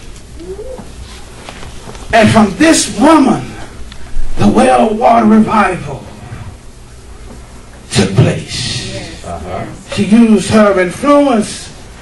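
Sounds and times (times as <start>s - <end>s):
low steady room hum: 0.0s - 12.0s.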